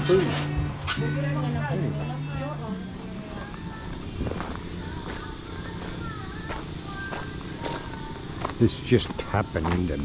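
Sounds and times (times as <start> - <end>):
music: 0.0 - 10.0
footsteps on gravel: 3.3 - 10.0.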